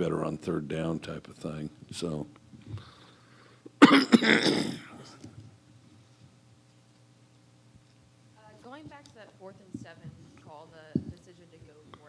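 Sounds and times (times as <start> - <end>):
man coughing: 3.8 - 5.2.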